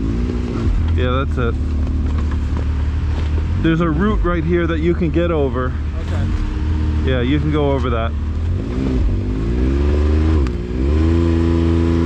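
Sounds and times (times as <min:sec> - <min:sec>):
engine revving under load: 0:00.0 - 0:12.0.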